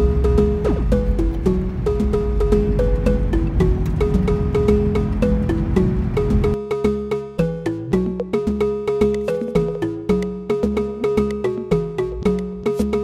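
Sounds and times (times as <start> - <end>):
car rumbling on road: 0.0 - 6.6
background music with clicking beat: 0.0 - 13.0.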